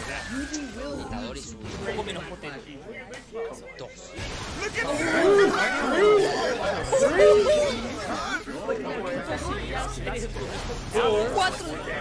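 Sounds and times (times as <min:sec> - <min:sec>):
babble of overlapping chatter: 0:00.0 - 0:12.0.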